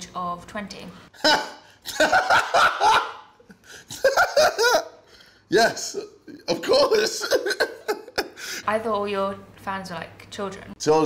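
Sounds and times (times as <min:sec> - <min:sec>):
man laughing loudly: 0:01.2 - 0:05.0, 0:05.8 - 0:08.6.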